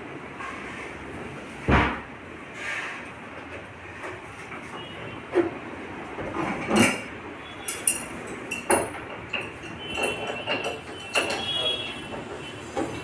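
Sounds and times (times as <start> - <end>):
steady background noise: 0.0 - 13.0.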